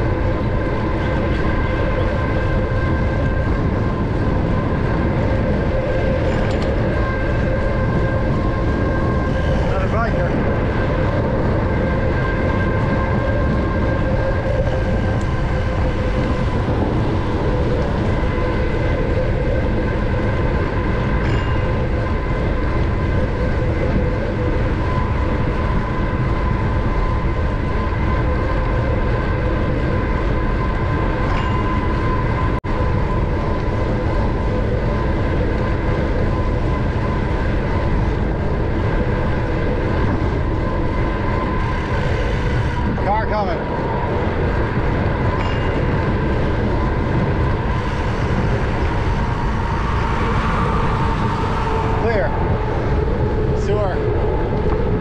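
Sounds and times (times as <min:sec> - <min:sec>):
bike tyres humming: 0:00.0 - 0:55.0
wind rush on microphone: 0:00.0 - 0:55.0.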